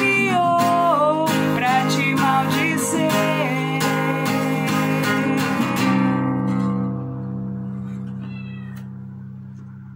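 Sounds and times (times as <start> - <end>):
acoustic guitar chord ringing: 0.0 - 9.9.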